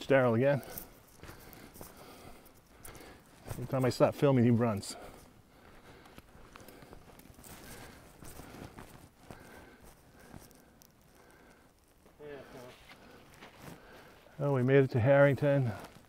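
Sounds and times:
footsteps on rocks and dry leaves: 0:00.0 - 0:11.2.

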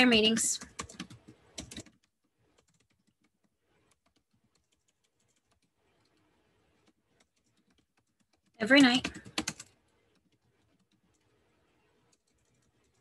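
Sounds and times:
keyboard keys typing: 0:00.2 - 0:13.0.

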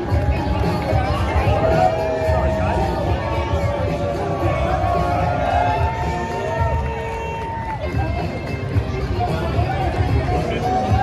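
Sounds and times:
crowd talking: 0:00.0 - 0:11.0
music: 0:00.0 - 0:11.0
raised voices: 0:00.0 - 0:11.0.

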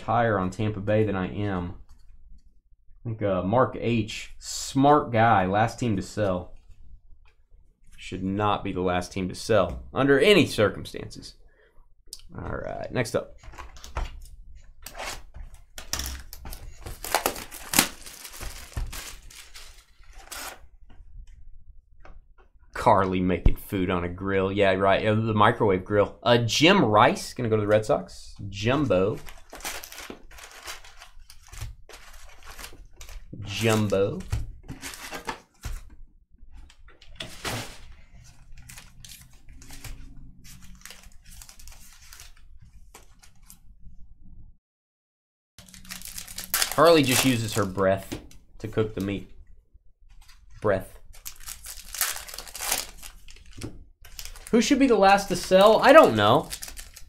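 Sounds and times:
cardboard tearing and crinkling: 0:16.0 - 0:20.6, 0:29.2 - 0:35.8, 0:45.6 - 0:47.8, 0:51.2 - 0:57.0
sharp cardboard crack: 0:16.8 - 0:19.2.

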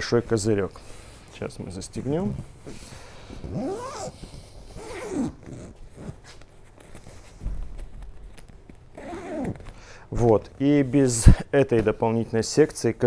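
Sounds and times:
zipper being pulled: 0:03.4 - 0:06.5, 0:08.9 - 0:09.8.

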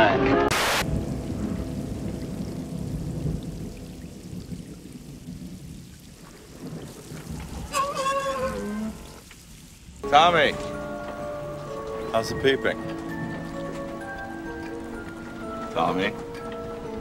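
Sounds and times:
rain falling: 0:00.0 - 0:17.0
low rumble: 0:00.8 - 0:06.2.

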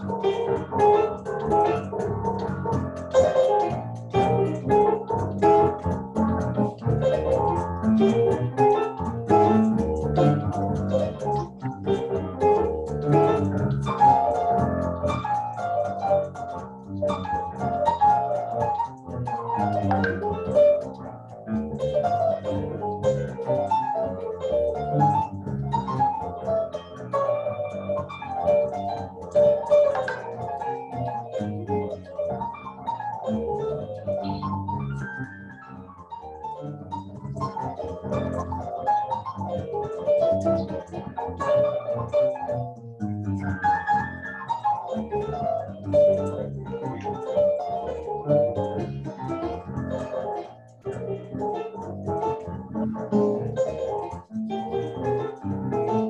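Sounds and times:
jazz on electronic keyboard: 0:00.0 - 0:56.0.

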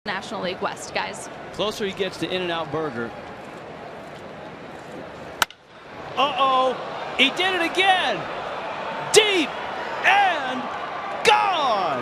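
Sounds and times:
bat hitting baseball: 0:05.4 - 0:05.6
announcer talking: 0:09.1 - 0:10.7.

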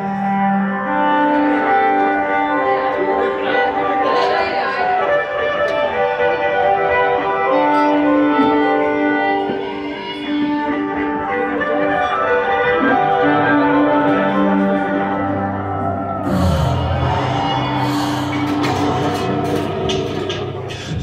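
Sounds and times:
bowed string-like held notes: 0:00.3 - 0:21.0
low bass note: 0:15.6 - 0:21.0.

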